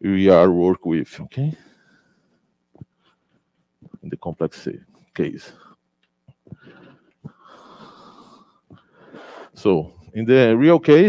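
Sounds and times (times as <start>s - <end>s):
soft breathing: 1.5s - 3.4s, 6.4s - 10.1s.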